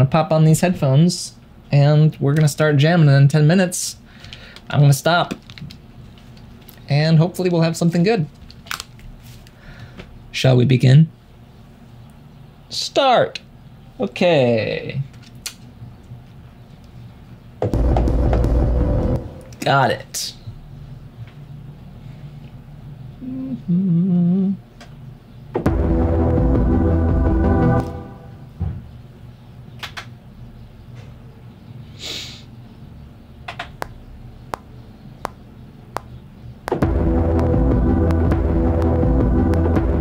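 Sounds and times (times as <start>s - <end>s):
faint low hum: 0.0s - 29.7s
steady low hum: 15.7s - 29.3s, 32.7s - 40.0s
deep bass beat: 17.6s - 19.7s, 25.6s - 28.6s, 36.7s - 40.0s
held synth note: 17.7s - 19.6s, 25.7s - 28.6s, 36.7s - 40.0s.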